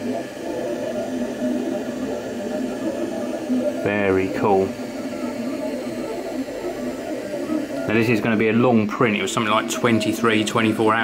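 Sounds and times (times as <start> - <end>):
steady fan hiss: 0.0 - 11.0
stepper motors whirring: 0.0 - 11.0.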